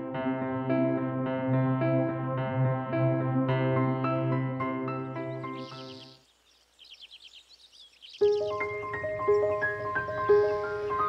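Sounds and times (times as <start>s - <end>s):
background music: 0.0s - 6.2s, 8.2s - 11.0s
small birds chirping: 4.9s - 11.0s.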